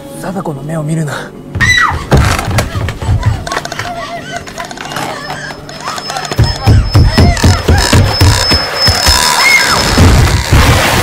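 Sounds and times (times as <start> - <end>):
shrill rising and falling sounds: 4.0 - 10.1.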